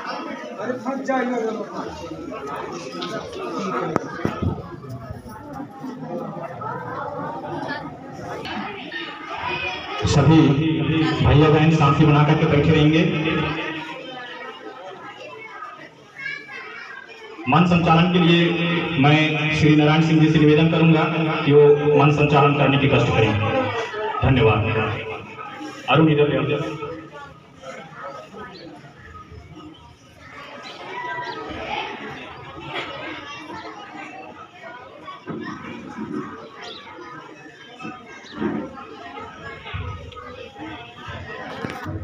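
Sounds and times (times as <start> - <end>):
children chattering: 0.0 - 42.0.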